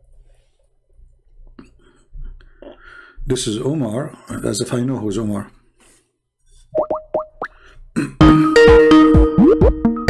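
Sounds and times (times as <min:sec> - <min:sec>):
rising electronic bloop tones: 0:06.8 - 0:07.5, 0:08.6 - 0:10.0.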